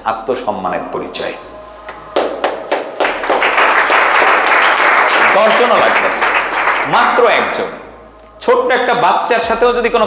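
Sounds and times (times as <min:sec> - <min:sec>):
audience applause: 0:02.2 - 0:07.4.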